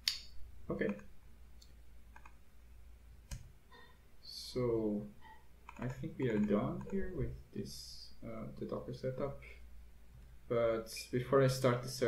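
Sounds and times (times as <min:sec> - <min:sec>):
computer input clicks: 0:05.7 - 0:07.0.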